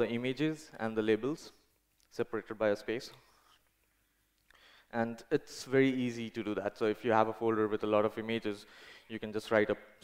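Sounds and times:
man lecturing: 0.0s - 3.4s, 4.6s - 10.0s
faint breath: 4.5s - 5.0s, 8.6s - 9.1s.

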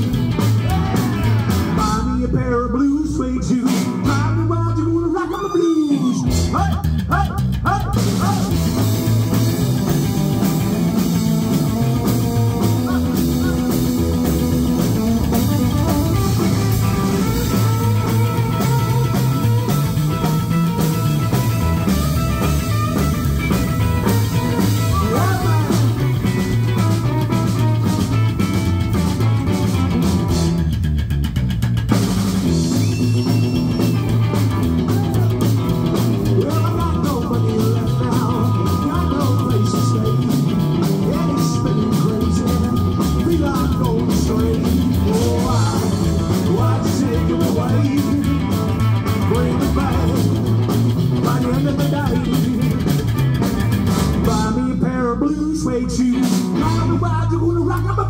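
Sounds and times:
electric guitar lead: 0.0s - 2.4s, 3.7s - 58.0s
bass line: 0.0s - 58.0s
drums: 0.0s - 58.0s.

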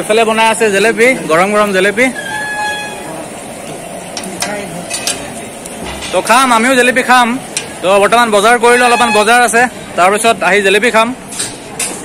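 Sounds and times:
food sizzling in hot oil: 0.0s - 9.9s.

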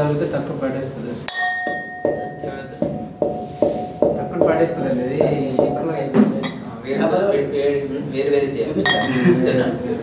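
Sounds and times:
pestle pounding in a mortar: 1.4s - 6.3s.

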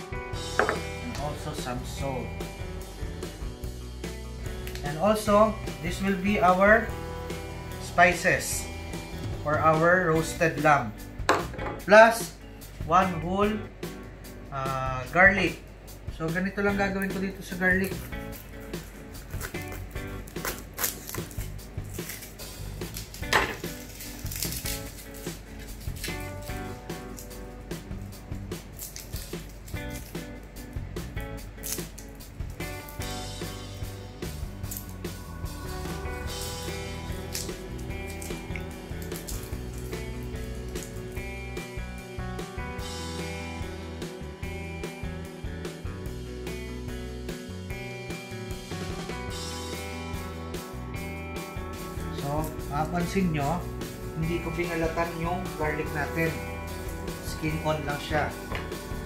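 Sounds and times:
background music: 0.0s - 59.0s
knife knocking on cutting board: 0.6s - 0.9s.

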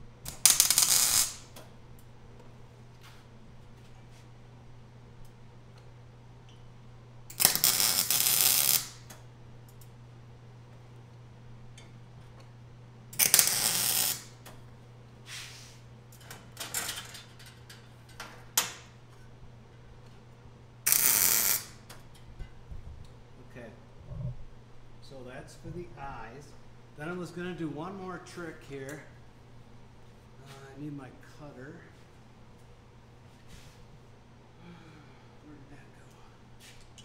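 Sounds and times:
steady low hum: 0.0s - 37.0s
welder crackling: 0.2s - 1.6s, 7.3s - 10.0s, 13.1s - 14.5s, 20.8s - 22.0s.

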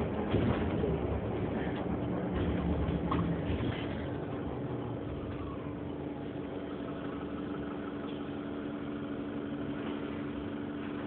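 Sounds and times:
bus interior hum: 0.0s - 11.0s.

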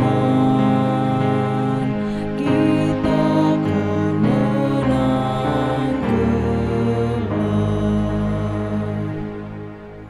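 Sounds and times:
woman and man singing a hymn: 0.0s - 9.5s.

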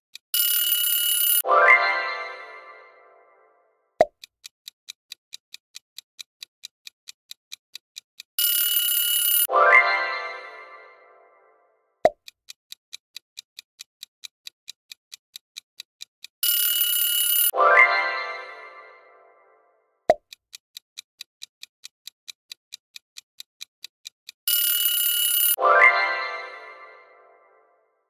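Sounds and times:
clock-like ticking: 0.1s - 3.1s, 4.0s - 11.0s, 12.0s - 19.0s, 20.1s - 27.0s
alarm-like ringing: 0.4s - 3.5s, 8.4s - 11.4s, 16.4s - 19.5s, 24.5s - 27.6s
bright chime: 1.4s - 3.5s, 9.4s - 11.5s, 17.4s - 19.6s, 25.4s - 27.6s.

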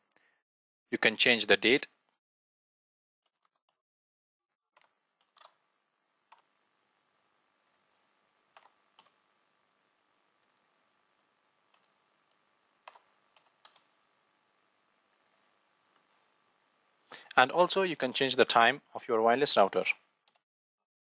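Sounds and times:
computer keyboard clicks: 12.9s - 13.8s.

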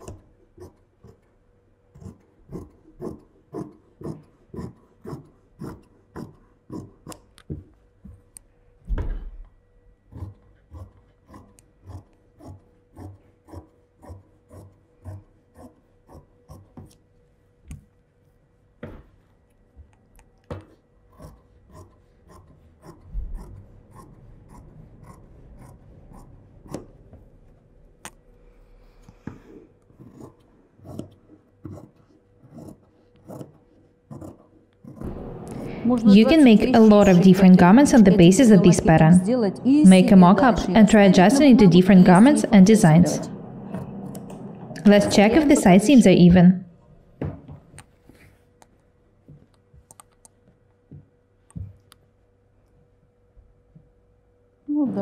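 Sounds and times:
scissors snipping fabric: 2.0s - 7.4s.

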